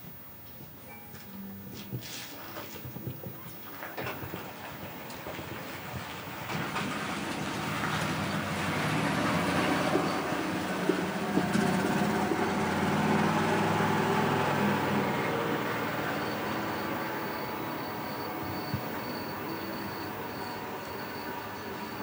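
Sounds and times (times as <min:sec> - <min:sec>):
large vehicle rumbling: 0:01.3 - 0:22.0
faint high whine: 0:16.0 - 0:22.0.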